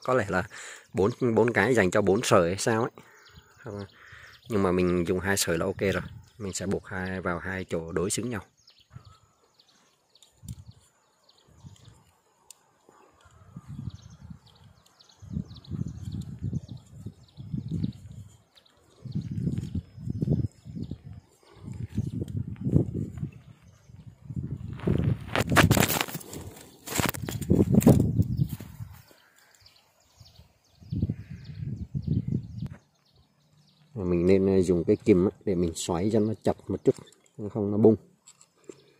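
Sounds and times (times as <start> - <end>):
handling noise rustling: 16.8 - 29.2
scraping rustle: 24.5 - 29.6.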